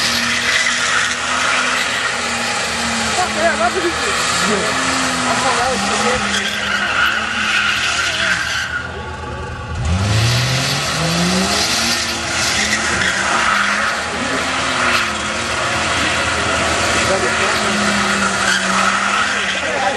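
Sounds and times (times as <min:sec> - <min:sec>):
tyres squealing: 0:00.0 - 0:09.2, 0:09.8 - 0:19.9
car engine revving: 0:00.0 - 0:19.9.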